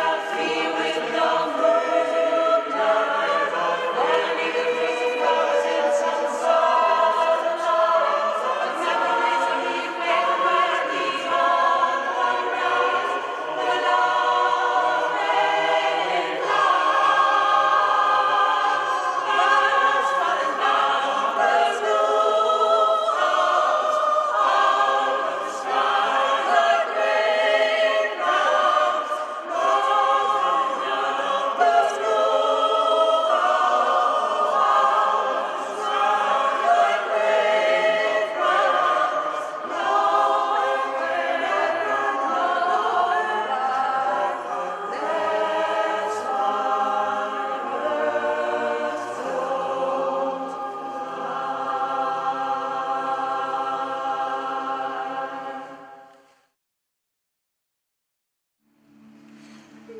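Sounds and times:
mixed choir singing unaccompanied: 0:00.0 - 0:56.3.

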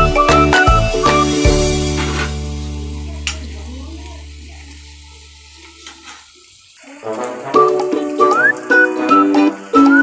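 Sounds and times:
background music: 0:00.0 - 0:03.3, 0:07.0 - 0:10.0
food sizzling in a pan: 0:00.0 - 0:10.0.

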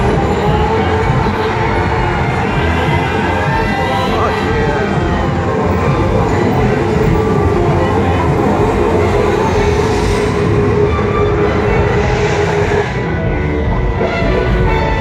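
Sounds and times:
rumbling train sound effect: 0:00.0 - 0:15.0.

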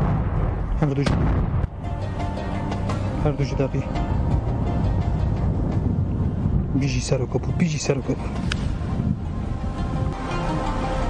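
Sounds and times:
explosion rumble: 0:00.0 - 0:07.5
background music: 0:00.8 - 0:11.0.

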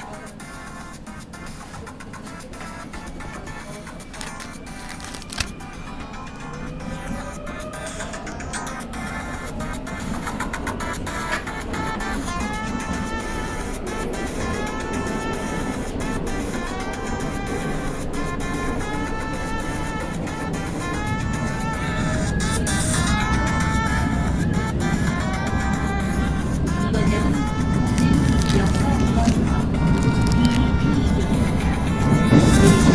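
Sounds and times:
music playing: 0:00.0 - 0:32.9
subway train rumble: 0:00.0 - 0:32.9.

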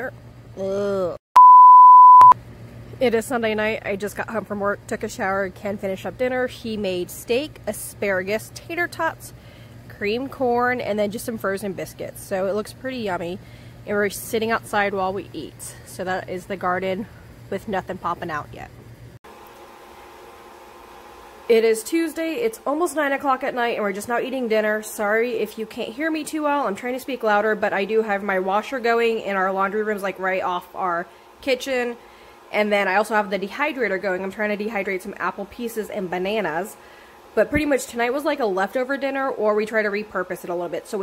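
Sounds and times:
electronic censor beep: 0:01.4 - 0:02.4
food dehydrator fan whir: 0:02.5 - 0:41.0
washing machine running: 0:03.1 - 0:41.0.

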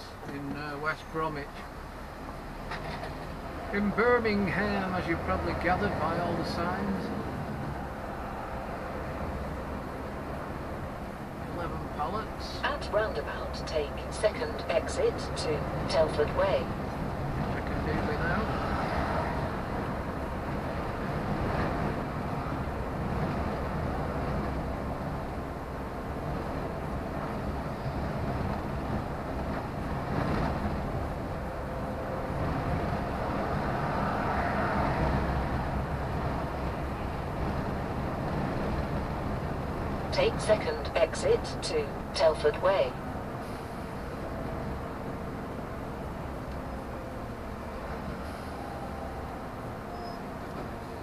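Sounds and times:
truck engine and road rumble: 0:00.0 - 0:51.0
sat-nav voice prompt: 0:40.2 - 0:43.0.

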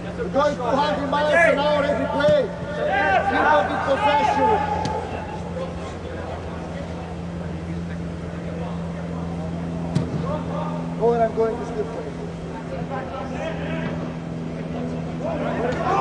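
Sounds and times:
players shouting: 0:00.0 - 0:07.2, 0:13.0 - 0:16.0
inflation blowers humming: 0:00.0 - 0:16.0
ball being struck: 0:04.8 - 0:05.0, 0:09.9 - 0:10.3.

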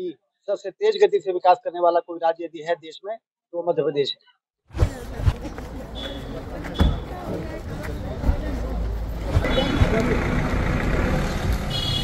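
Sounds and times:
crowd chatter: 0:04.8 - 0:11.7
car engine running: 0:08.4 - 0:11.8.

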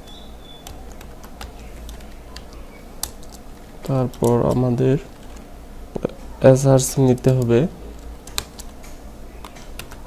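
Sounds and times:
steady low hum: 0:00.0 - 0:10.0
keyboard keystroke clicks: 0:08.2 - 0:10.0.

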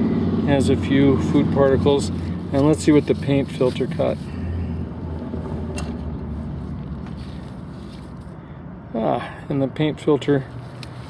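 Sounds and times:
engine humming: 0:00.0 - 0:09.6
outdoor background noise: 0:00.0 - 0:11.0.

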